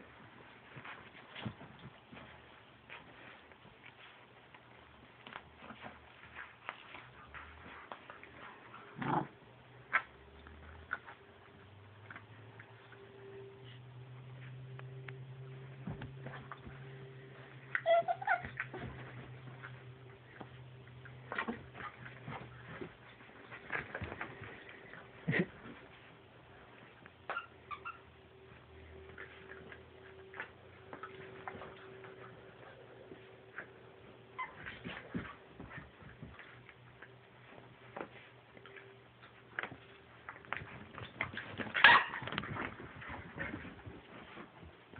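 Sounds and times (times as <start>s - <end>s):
puppies scuffling: 0.0s - 44.9s
clicks and rustling of scuffle: 15.8s - 27.0s, 34.4s - 44.9s
puppy yips: 17.7s - 18.9s, 41.8s - 42.2s
puppies squeaking and whining: 17.7s - 19.8s, 27.3s - 28.1s, 34.3s - 35.8s, 41.0s - 42.4s.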